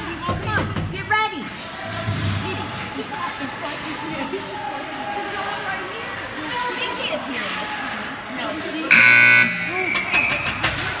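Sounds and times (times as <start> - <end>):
spectators' voices: 0.0 - 11.0
rink horn: 8.9 - 9.8.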